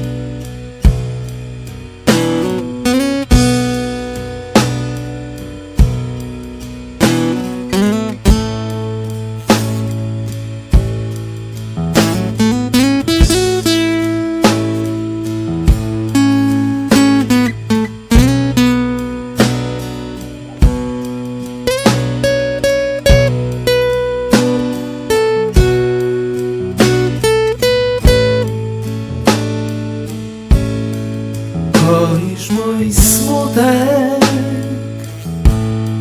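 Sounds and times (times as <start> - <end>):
country-soul ballad: 0.0 - 36.0
lead guitar with bent notes: 0.0 - 36.0.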